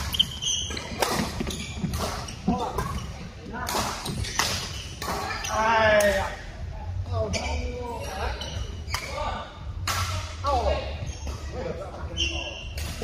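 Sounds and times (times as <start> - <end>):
players' voices: 0.7 - 13.0.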